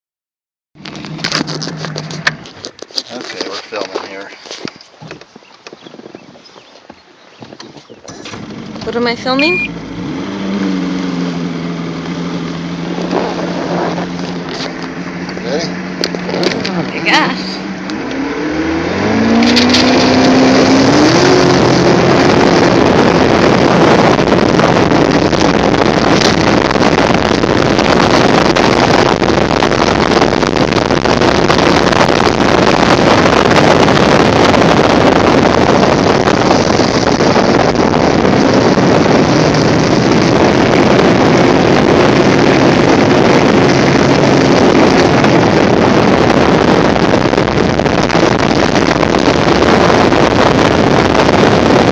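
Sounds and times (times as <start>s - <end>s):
wind and water rushing: 3.4s - 51.9s
boat engine throttling up: 7.4s - 51.9s.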